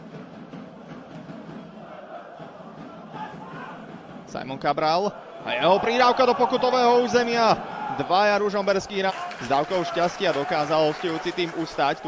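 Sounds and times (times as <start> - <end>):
faint crowd chanting: 0.8 - 4.3, 5.0 - 6.6.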